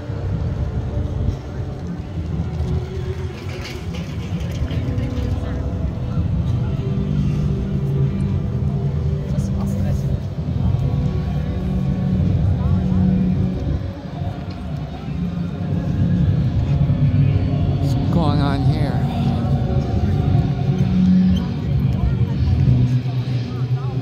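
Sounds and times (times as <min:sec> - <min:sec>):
music playing: 0:00.0 - 0:24.0
traffic rumble: 0:00.0 - 0:24.0
people talking: 0:04.4 - 0:07.4, 0:09.2 - 0:15.2, 0:17.8 - 0:20.4, 0:21.3 - 0:24.0.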